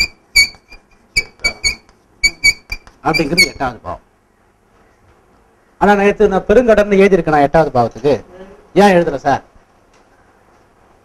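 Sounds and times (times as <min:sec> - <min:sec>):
chalk squeaking on blackboard: 0:00.0 - 0:03.8.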